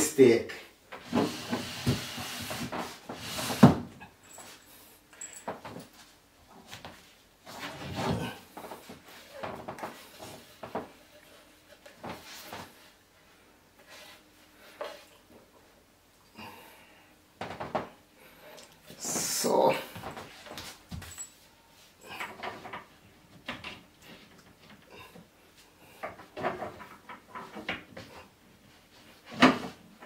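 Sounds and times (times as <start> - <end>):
furniture panels knocking and scraping: 26.2 - 28.2.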